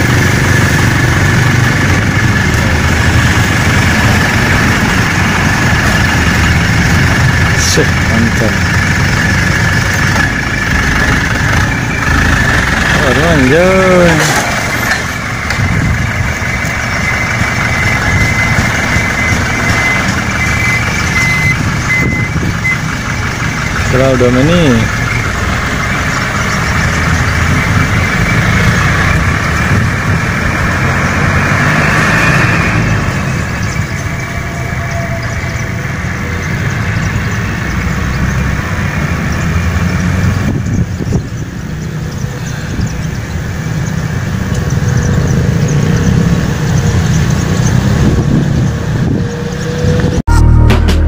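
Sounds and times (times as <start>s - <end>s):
outdoor noise: 0.0s - 51.0s
truck engine driving away: 0.0s - 51.0s
music: 50.3s - 51.0s.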